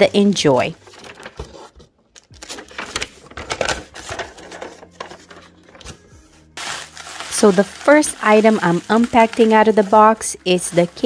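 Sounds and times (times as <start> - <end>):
bubble wrap crinkling: 0.8 - 6.0, 6.6 - 11.0
packing paper rustling: 0.8 - 11.0.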